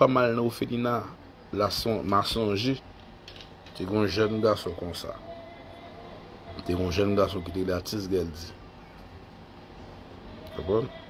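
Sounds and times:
man speaking: 0:03.8 - 0:05.2, 0:06.6 - 0:08.6, 0:10.5 - 0:11.0.

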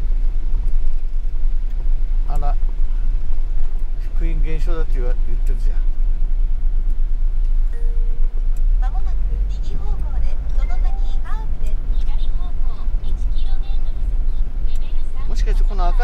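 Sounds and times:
van rumbling on wet road: 0:00.0 - 0:16.0.

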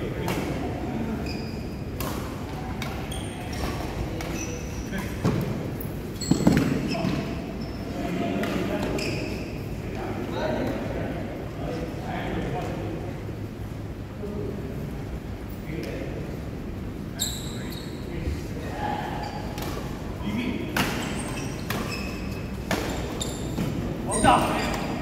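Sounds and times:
shoes squeaking on court: 0:01.2 - 0:02.2, 0:02.8 - 0:09.6, 0:17.2 - 0:18.0, 0:20.8 - 0:25.0.

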